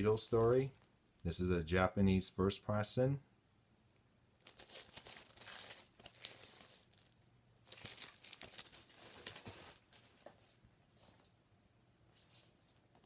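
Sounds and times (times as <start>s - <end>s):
plastic sleeve crinkling: 0.0s - 1.4s, 4.4s - 10.4s.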